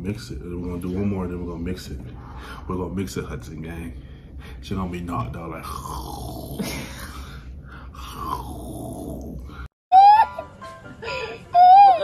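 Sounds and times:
music: 0:09.9 - 0:12.0.

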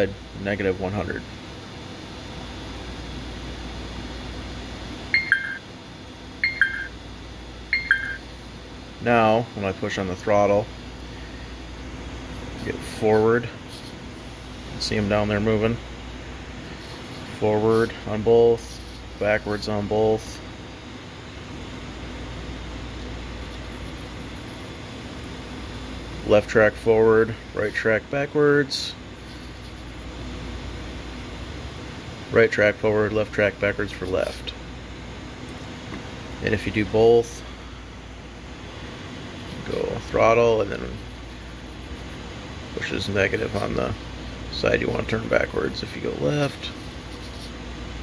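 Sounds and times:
two-note transmitter beeps: 0:05.1 - 0:05.7, 0:06.4 - 0:07.0, 0:07.7 - 0:08.3.

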